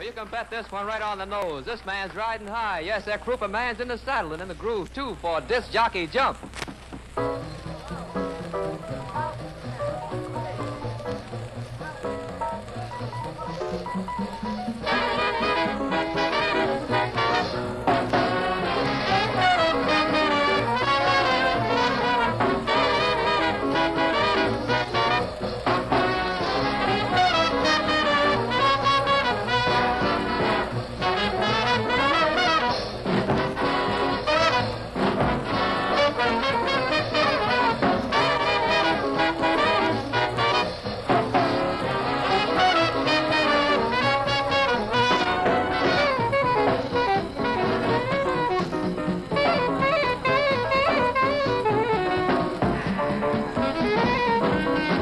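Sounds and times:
swing big band playing: 0.0s - 55.0s.

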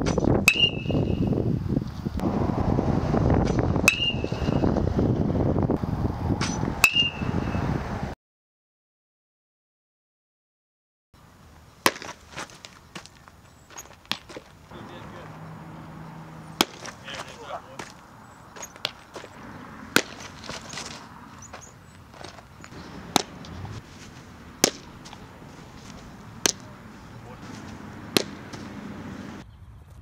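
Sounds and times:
open-air field background: 0.0s - 8.2s, 11.2s - 30.0s
baseball smacking into mitt: 11.8s - 13.1s, 16.6s - 18.0s, 18.6s - 21.0s, 22.2s - 23.7s, 24.6s - 25.2s, 25.8s - 26.7s, 27.4s - 28.7s.

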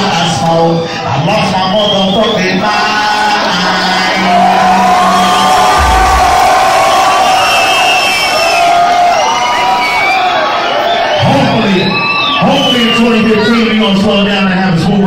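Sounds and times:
crowd cheering and whooping: 3.4s - 12.4s
low bass boom: 5.6s - 8.0s
held bass note: 5.7s - 7.3s.

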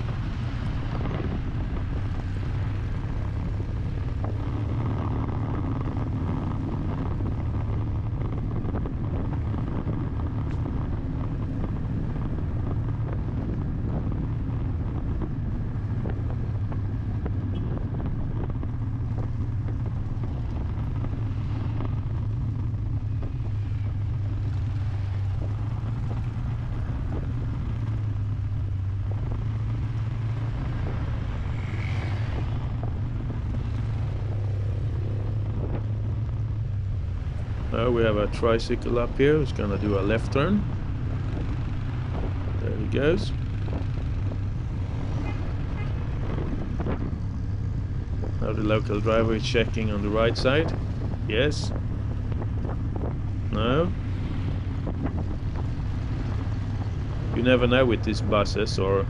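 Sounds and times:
road and wind noise: 0.0s - 59.0s
vehicle engine hum: 0.0s - 59.0s.

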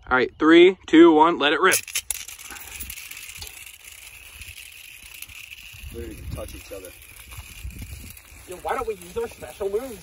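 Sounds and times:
spinning tops whirring: 1.7s - 10.0s.

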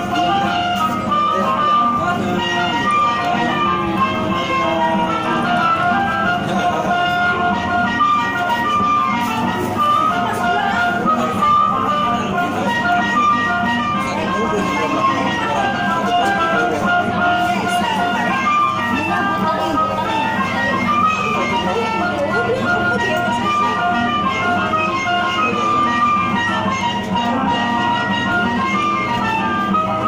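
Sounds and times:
voices in background: 0.0s - 30.0s
kiddie ride electronic jingle: 0.1s - 30.0s.

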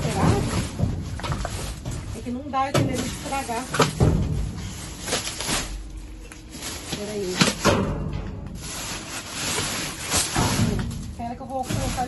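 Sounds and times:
plastic bags rustling: 0.0s - 12.0s
heavy thump in metal dumpster: 3.8s - 4.8s.

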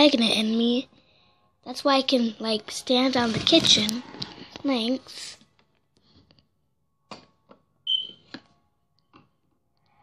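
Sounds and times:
short high-pitched beep: 7.9s - 8.2s.

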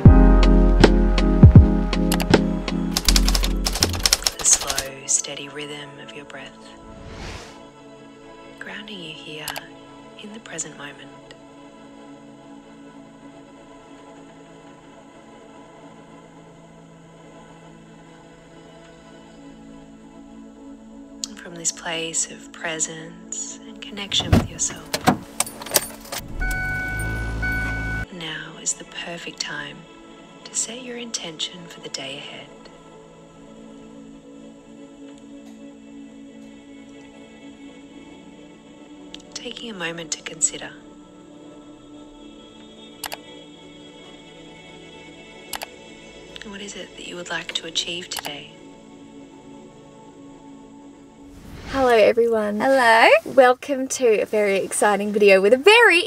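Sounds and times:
background music: 0.0s - 56.0s
typewriter keys clacking: 3.0s - 4.9s
car engine idling: 24.0s - 25.4s, 26.2s - 28.0s.

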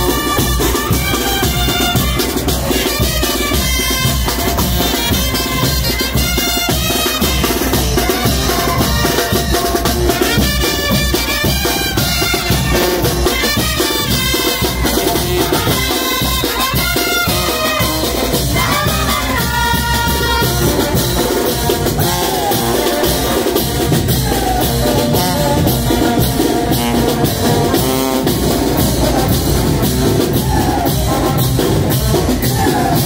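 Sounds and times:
brass band playing marching tune: 0.0s - 33.0s.

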